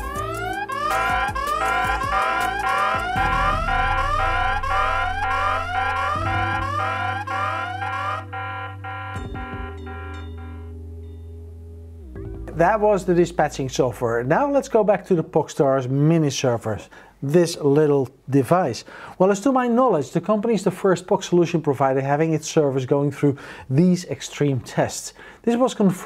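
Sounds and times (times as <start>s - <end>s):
electronic alarm tone sweeping upward: 0.0s - 10.6s.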